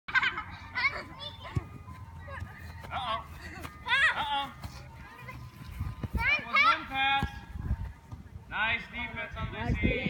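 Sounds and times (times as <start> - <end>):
children calling and shouting: 0.1 - 8.1.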